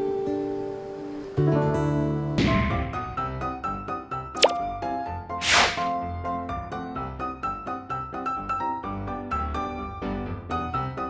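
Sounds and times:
cartoon pop: 4.4s - 4.6s
whoosh: 5.4s - 5.9s.

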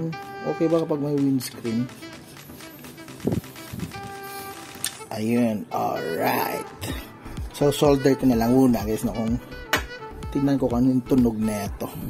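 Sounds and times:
faint background music: 0.0s - 12.0s
microphone handling noise: 3.2s - 4.2s.

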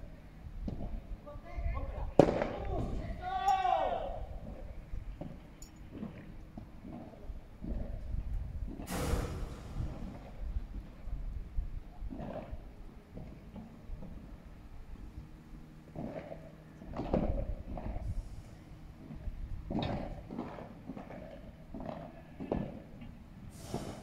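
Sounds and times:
voices: 1.2s - 4.6s
player calling out: 2.7s - 4.2s
rushing burst of noise: 8.9s - 10.2s.

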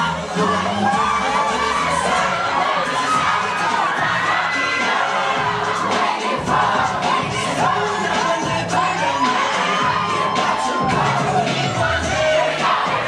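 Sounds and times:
audience cheering and shouting: 0.0s - 13.0s
pop dance track: 0.0s - 13.0s.

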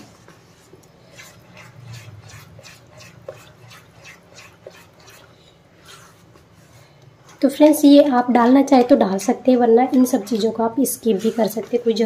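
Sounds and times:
spatula scraping a pan: 0.0s - 8.1s, 9.0s - 12.0s.

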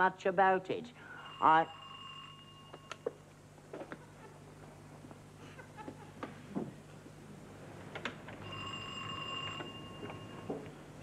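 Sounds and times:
electric doorbell ringing: 1.2s - 3.2s, 8.4s - 10.7s.

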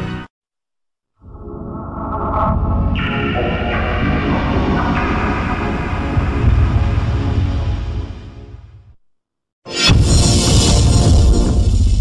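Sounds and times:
electronic logo music: 1.2s - 8.8s
heavy low rumble: 2.5s - 9.0s.

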